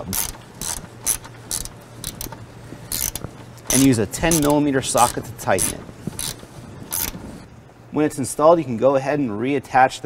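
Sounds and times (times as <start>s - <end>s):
hand ratchet clicking: 0.0s - 7.2s.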